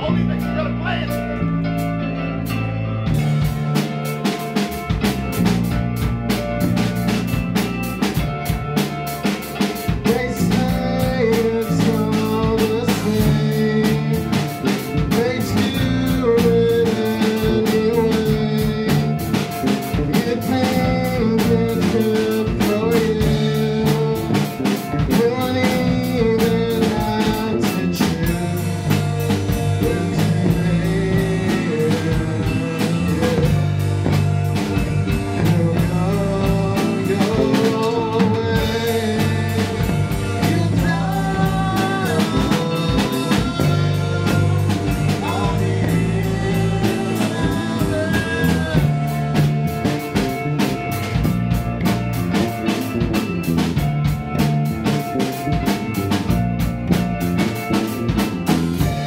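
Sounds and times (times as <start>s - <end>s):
drum kit beat: 0.0s - 59.0s
electric bass: 0.0s - 59.0s
keyboard melody: 0.0s - 59.0s.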